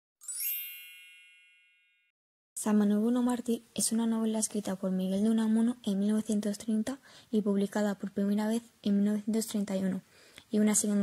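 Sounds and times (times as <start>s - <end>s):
bright chime ringing: 0.2s - 2.1s.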